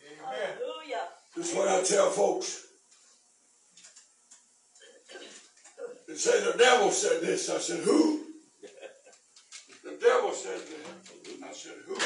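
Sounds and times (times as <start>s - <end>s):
man speaking loudly: 1.4s - 2.6s, 5.9s - 8.3s, 9.9s - 12.0s.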